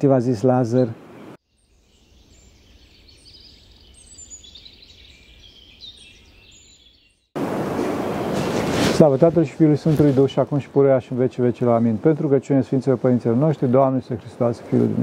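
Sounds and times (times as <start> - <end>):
faint birdsong: 0.0 - 8.7.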